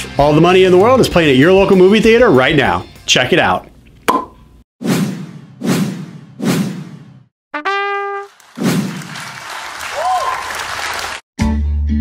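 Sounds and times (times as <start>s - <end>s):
crowd cheering and applause: 8.1s - 11.2s.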